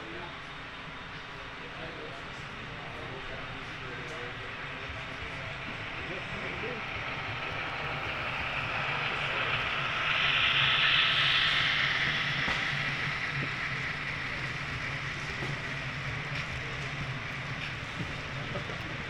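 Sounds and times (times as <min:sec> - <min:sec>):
model train rolling on track: 0:00.0 - 0:19.0
low steady hum: 0:01.8 - 0:19.0.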